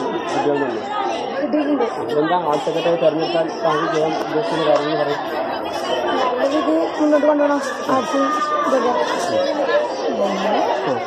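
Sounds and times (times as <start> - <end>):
overlapping chatter of people: 0.0 - 11.0.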